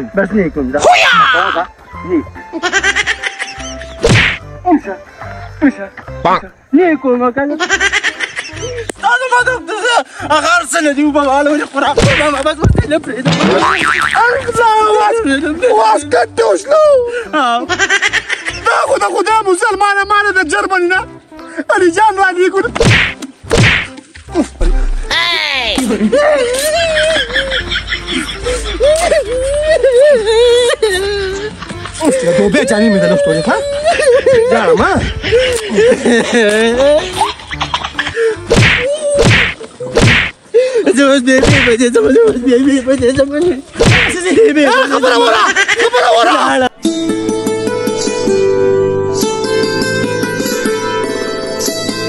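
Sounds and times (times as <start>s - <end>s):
sharp whack: 4.0s - 4.4s, 12.0s - 12.4s, 22.8s - 24.0s, 24.6s - 25.1s, 38.5s - 40.4s, 41.4s - 41.8s, 43.8s - 44.2s.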